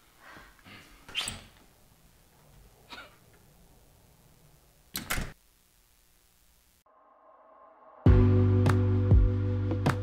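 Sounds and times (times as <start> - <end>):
door shutting: 1.1 - 1.6, 4.9 - 5.4.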